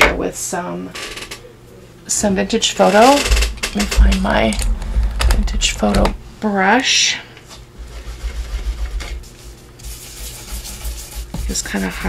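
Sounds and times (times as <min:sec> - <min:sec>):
brush scrubbing over paper: 0:07.8 - 0:12.0.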